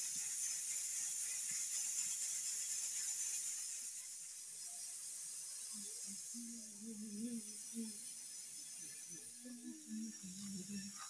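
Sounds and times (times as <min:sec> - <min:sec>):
steady high hiss: 0:00.0 - 0:11.0.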